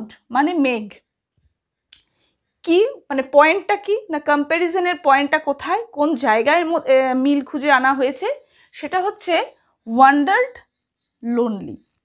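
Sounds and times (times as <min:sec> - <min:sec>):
woman speaking: 0:00.0 - 0:01.0, 0:02.6 - 0:12.0.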